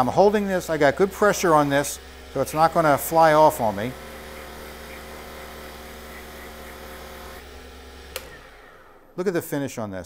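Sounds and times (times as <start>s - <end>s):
lathe motor humming: 0.0s - 9.4s
click: 8.1s - 8.4s.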